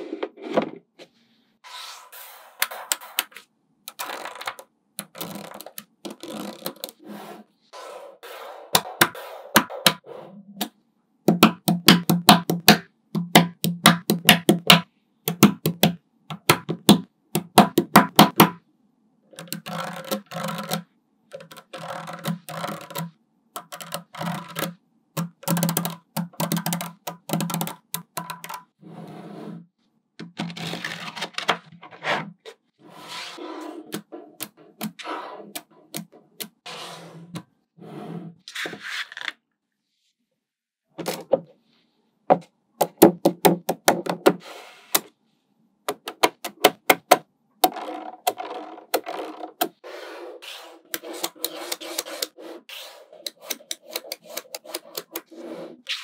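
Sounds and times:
magnetic balls clicking: 19.4s - 28.8s.

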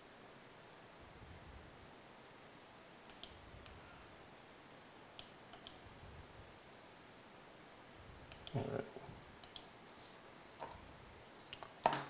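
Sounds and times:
computer mouse clicks: 3.1s - 3.8s, 5.2s - 5.8s, 8.3s - 8.7s, 9.4s - 9.7s.

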